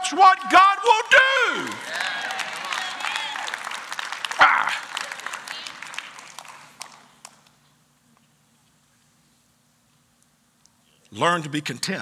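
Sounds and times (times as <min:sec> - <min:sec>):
congregation applauding: 0:00.2 - 0:07.6.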